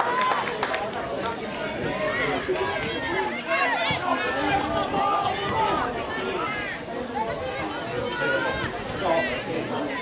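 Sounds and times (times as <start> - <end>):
crowd chatter: 0.0 - 10.0
players shouting: 0.0 - 10.0.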